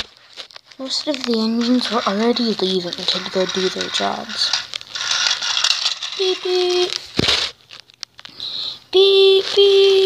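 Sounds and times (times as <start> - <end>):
rustling: 0.0 - 8.3.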